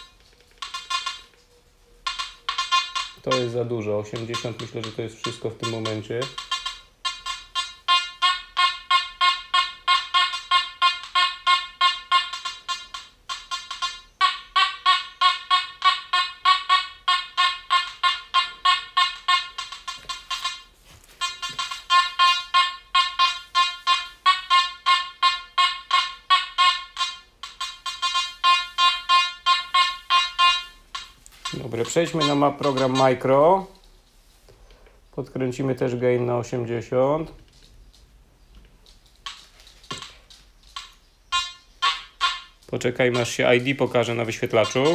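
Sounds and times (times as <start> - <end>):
metal detector beeping rapidly: 0.0 - 1.4, 2.0 - 33.6, 40.8 - 44.9.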